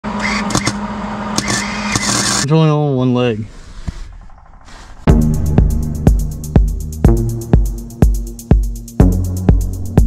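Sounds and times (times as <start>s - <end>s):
arc welder crackling and buzzing: 0.2s - 2.5s.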